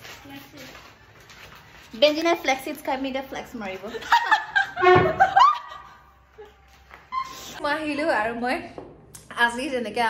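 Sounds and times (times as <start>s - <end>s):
woman laughing loudly: 3.9s - 6.5s.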